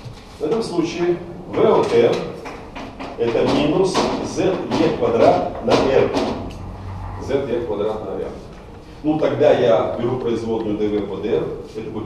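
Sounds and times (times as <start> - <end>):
person lecturing: 0.4 - 2.4, 3.2 - 6.4, 7.2 - 12.0
low rumble: 5.5 - 10.3.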